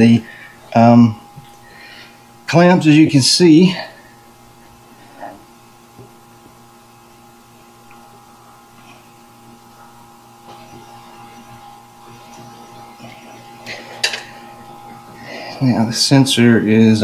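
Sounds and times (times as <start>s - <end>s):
steady electrical hum: 0.0s - 17.0s.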